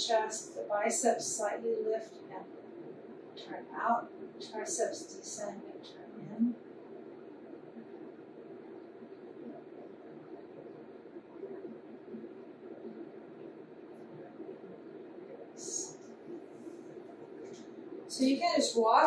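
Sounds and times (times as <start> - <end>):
faint low hum: 0.0 - 19.0
soft hiss: 0.0 - 19.0.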